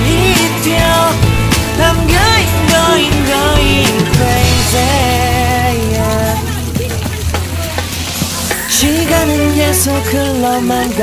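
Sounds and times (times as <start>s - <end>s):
pop music: 0.0s - 11.0s
water splashing with crackling hiss: 0.0s - 11.0s.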